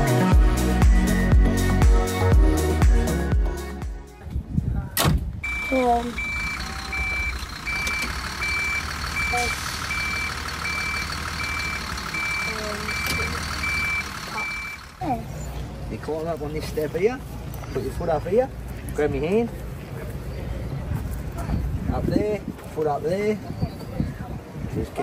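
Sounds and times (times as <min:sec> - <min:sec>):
low engine hum: 0:05.2 - 0:22.8
reversing alarm beeping: 0:05.4 - 0:15.0.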